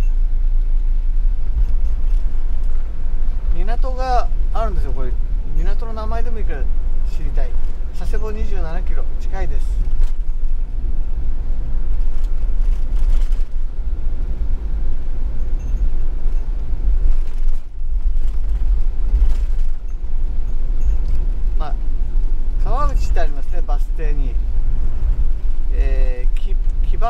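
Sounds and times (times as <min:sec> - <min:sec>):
road and engine rumble in cabin: 0:00.0 - 0:27.0.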